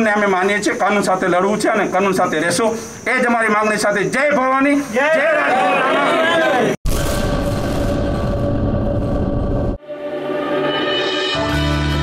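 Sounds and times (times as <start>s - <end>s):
sudden hit: 6.8s - 9.8s
loud dense rumble: 6.9s - 9.8s.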